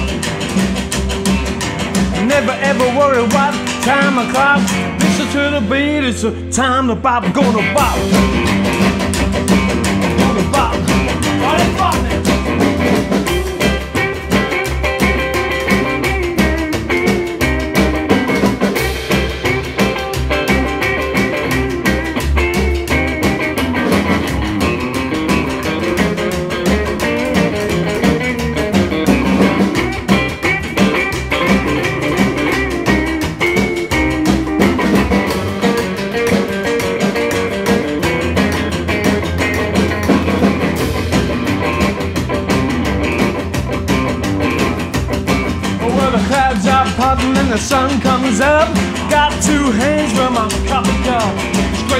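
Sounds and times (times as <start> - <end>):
electric guitar lead: 0.0 - 51.9
plucked double bass: 0.0 - 51.9
strummed acoustic guitar: 0.0 - 51.9.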